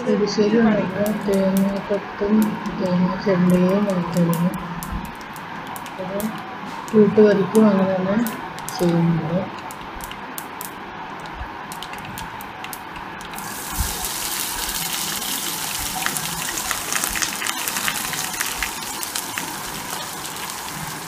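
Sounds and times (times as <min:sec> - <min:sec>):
seeds popping in hot oil: 0:01.0 - 0:07.6, 0:08.2 - 0:21.0
onion sizzling in oil: 0:13.4 - 0:21.0.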